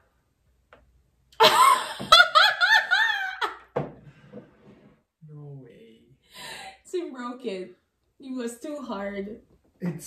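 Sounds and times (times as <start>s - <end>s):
woman laughing: 1.4s - 3.7s.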